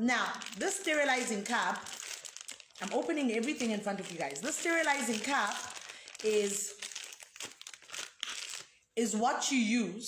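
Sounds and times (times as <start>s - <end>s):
plastic wrapping crinkling: 0.0s - 8.8s.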